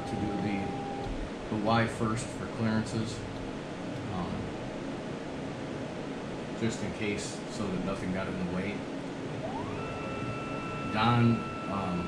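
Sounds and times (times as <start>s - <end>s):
stepper motors whining: 0.0s - 1.2s, 9.3s - 12.0s.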